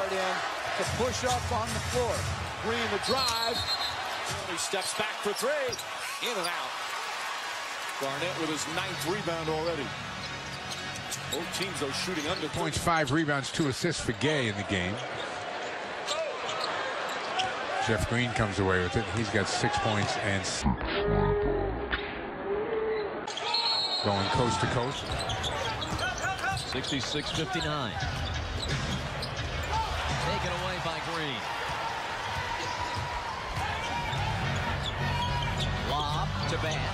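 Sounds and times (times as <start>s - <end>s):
arena crowd noise: 0.0s - 36.9s
short high shoe squeaks: 23.3s - 28.0s.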